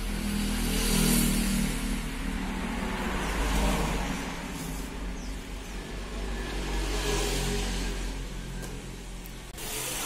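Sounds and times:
vehicle engine passing: 0.0 - 10.0.

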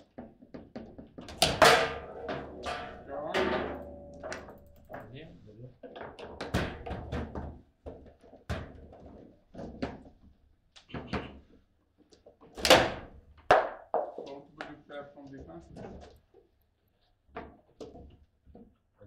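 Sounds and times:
foosball ball knocking: 0.6 - 4.8.

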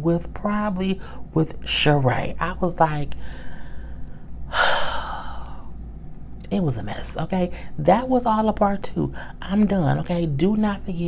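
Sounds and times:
woman gasping: 3.2 - 5.7.

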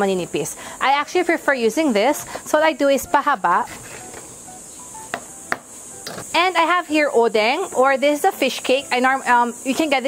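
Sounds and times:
faint background music: 0.0 - 10.0
sharp knocks on wooden board: 5.1 - 6.2.

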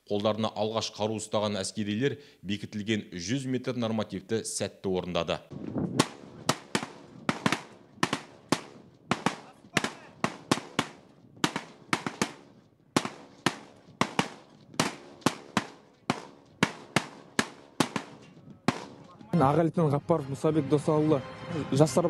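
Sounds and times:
rifles firing single shots: 6.0 - 19.3.

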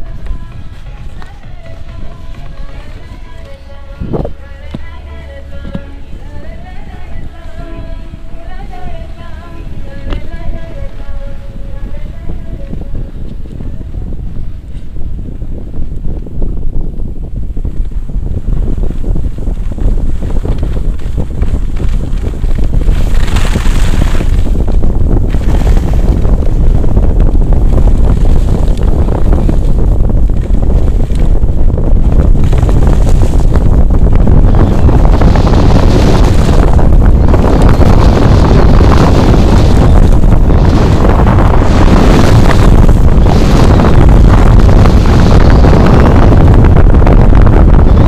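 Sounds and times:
skis scraping on packed snow: 0.0 - 4.9, 18.7 - 46.1
wind buffeting microphone: 0.0 - 48.0.

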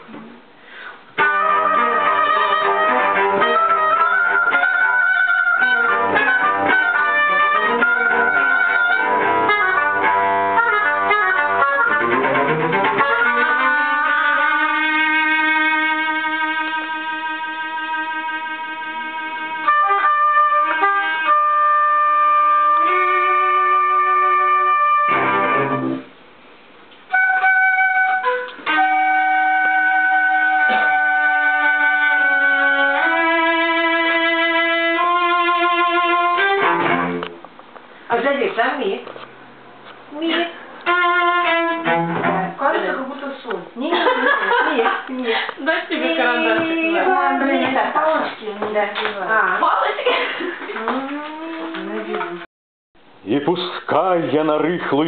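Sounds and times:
small ensemble playing chamber music: 0.0 - 26.2, 27.0 - 37.9, 39.0 - 52.5.

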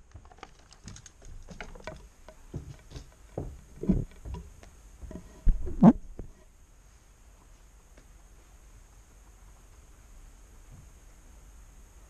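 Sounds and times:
handling clicks and knocks: 0.0 - 5.4
quiet hiss: 0.0 - 12.0.

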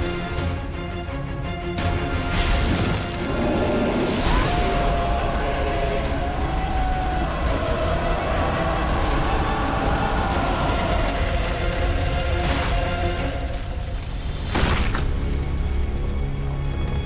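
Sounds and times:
dramatic orchestral score: 0.0 - 17.0
deep rumble of flames: 2.3 - 17.0.

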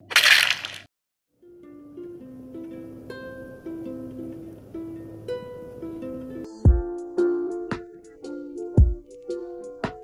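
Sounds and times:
crunching burst sound effect: 0.0 - 0.9.

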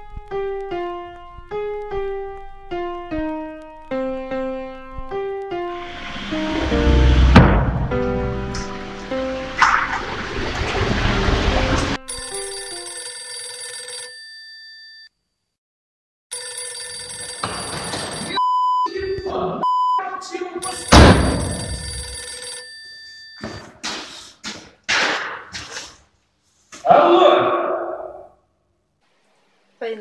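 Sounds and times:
sharp loud hit: 6.1 - 8.0
desk telephone ringing: 12.1 - 15.2, 16.3 - 20.0, 20.6 - 23.7.

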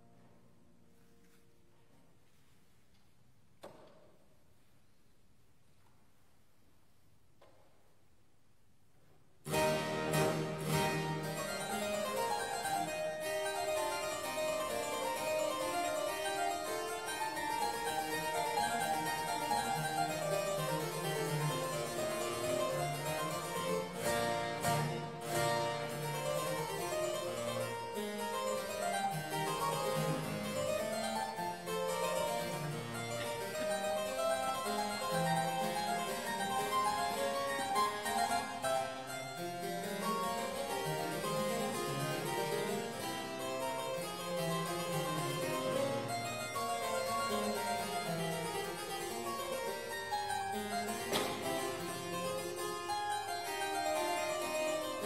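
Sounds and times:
solo harpsichord: 9.4 - 55.0.

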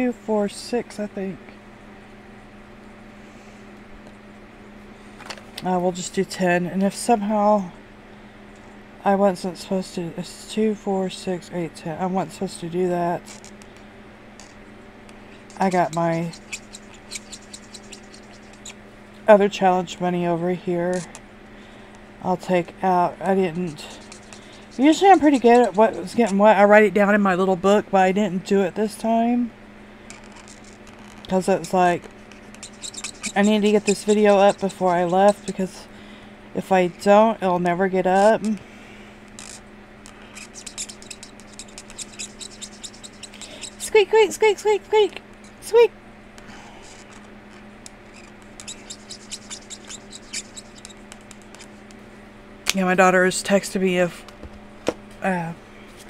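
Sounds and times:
marker pen scratching on paper: 13.2 - 13.5, 15.3 - 18.8, 23.3 - 26.4, 30.1 - 35.8, 39.4 - 44.3, 46.8 - 47.2, 48.0 - 51.9.

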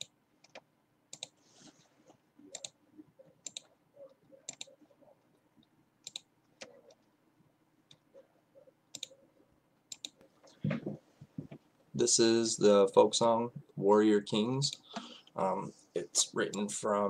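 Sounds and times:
computer clicking: 0.0 - 1.4, 2.5 - 2.8, 3.4 - 3.7, 4.5 - 4.8, 5.6 - 7.1, 8.9 - 9.2, 9.9 - 10.3.

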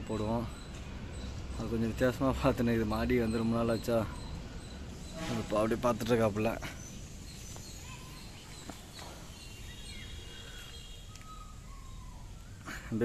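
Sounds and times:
faint bird chirps: 0.0 - 13.0.

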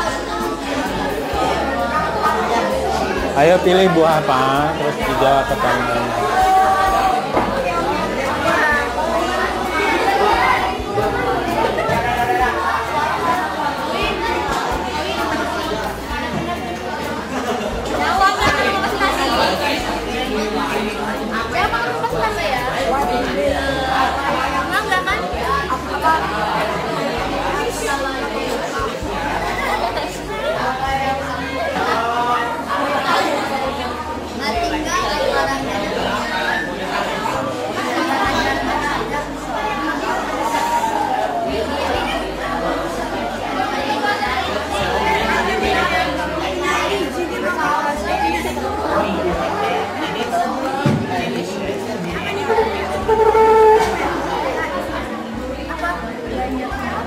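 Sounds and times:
chatter of many students: 0.0 - 57.0.

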